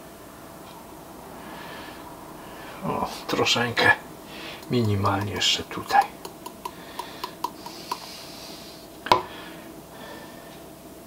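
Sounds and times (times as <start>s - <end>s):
metal sieve tapping: 4.6s - 8.1s.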